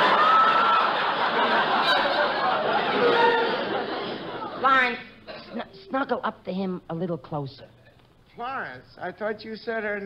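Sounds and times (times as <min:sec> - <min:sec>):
audience laughing: 0:00.0 - 0:04.6.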